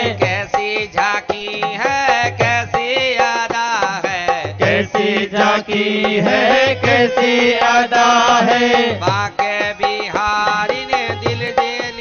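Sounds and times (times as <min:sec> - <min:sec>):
man chanting: 0:00.0 - 0:12.0
musical accompaniment: 0:00.0 - 0:12.0.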